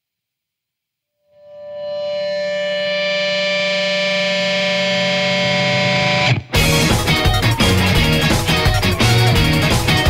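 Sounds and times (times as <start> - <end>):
distorted synthesizer tone: 1.3 - 6.8.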